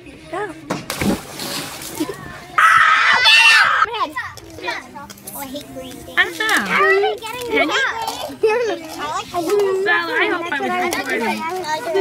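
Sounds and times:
child splashing into pool: 0.9 - 2.4
children's voices: 1.9 - 12.0
child shrieking: 2.6 - 3.9.

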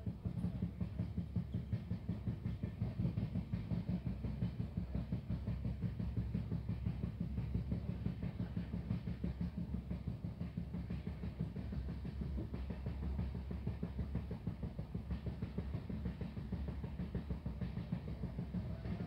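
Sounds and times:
train rumble: 0.0 - 19.0
wheels clattering and bodywork rattling: 0.0 - 19.0.

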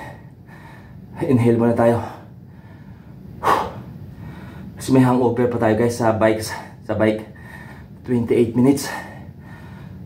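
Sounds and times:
man's sharp breath: 2.5 - 4.7.

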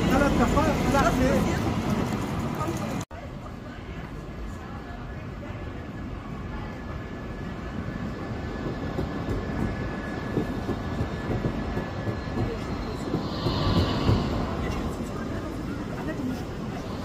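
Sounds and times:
tram rumbling on rails: 0.0 - 17.0.

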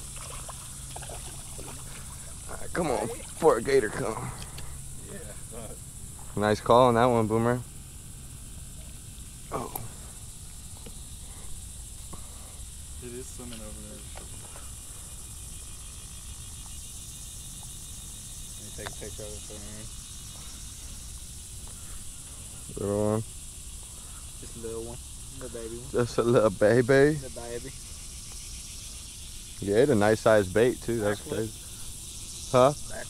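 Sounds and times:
high-pitched insect drone: 0.0 - 33.0.

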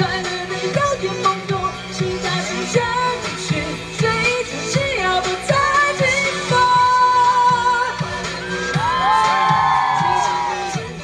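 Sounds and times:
live pop band music: 0.0 - 11.0
audience whooping: 8.6 - 10.9.

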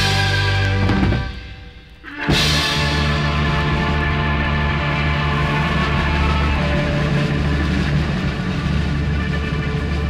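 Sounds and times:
progressive rock music: 0.0 - 10.0.

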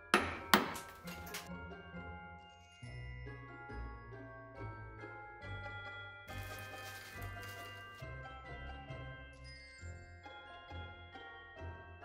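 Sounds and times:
light music with chimes: 0.0 - 12.0.

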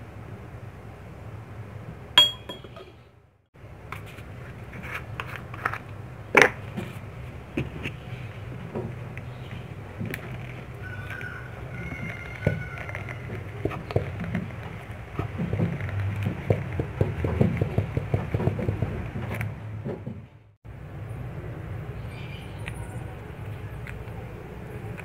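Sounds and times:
small clicks and crackles: 8.9 - 16.8.

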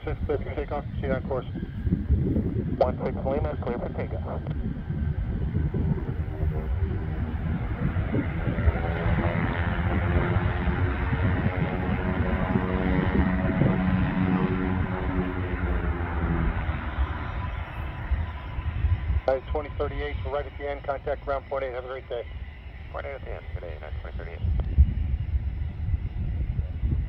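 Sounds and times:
jet engines roaring: 0.0 - 27.0.

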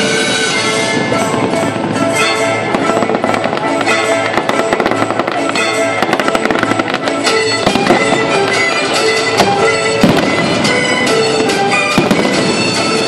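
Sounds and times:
fireworks bangs and crackles: 0.0 - 13.0
music with held notes: 0.0 - 13.0.

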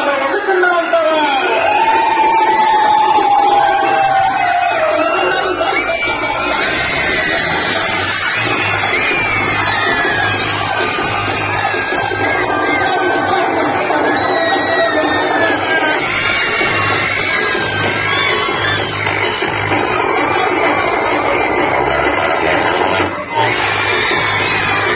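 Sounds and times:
children cheering and shouting: 0.0 - 24.9
loud dance music: 0.0 - 24.9.

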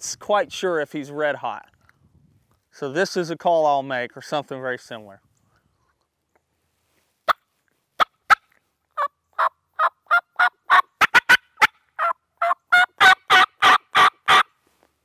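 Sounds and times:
turkey call clucks: 8.0 - 14.5
turkey call yelps: 9.0 - 14.5.

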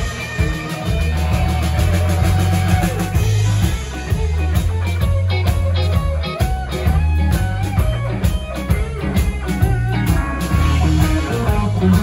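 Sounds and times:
bass guitar line: 0.0 - 12.0
drum kit hits: 0.0 - 12.0
electric guitars: 0.0 - 12.0.

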